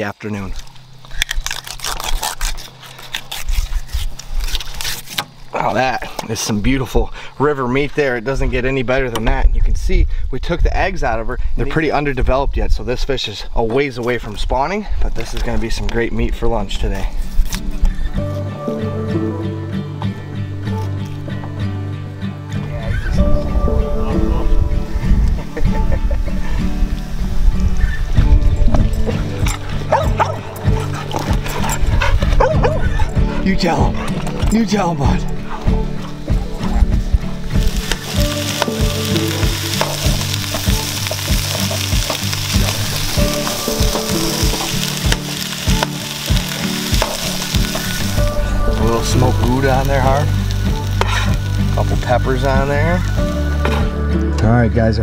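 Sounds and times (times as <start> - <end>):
knife scraping through fish: 1.3 - 5.3
background music: 16.3 - 55.0
dog whining and yipping: 29.4 - 33.3.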